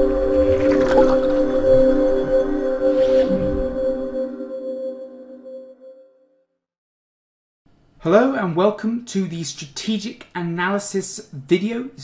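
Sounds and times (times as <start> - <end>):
rushing sound effect: 0.0 - 5.7
ambient synth chord: 0.0 - 6.5.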